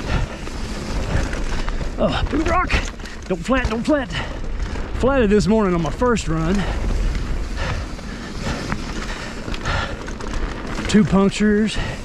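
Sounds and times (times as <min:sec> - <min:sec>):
bike rattling: 0:00.0 - 0:12.0
bike tyres on dirt and stones: 0:00.0 - 0:12.0.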